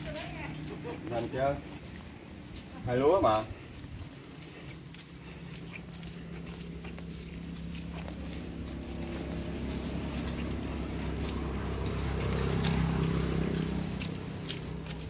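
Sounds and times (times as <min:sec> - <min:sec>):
engine humming: 0:00.0 - 0:15.0
footsteps on wet dirt: 0:00.0 - 0:15.0.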